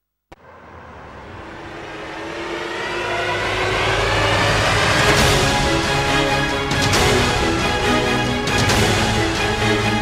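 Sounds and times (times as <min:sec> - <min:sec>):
tv theme music: 0:01.0 - 0:10.0.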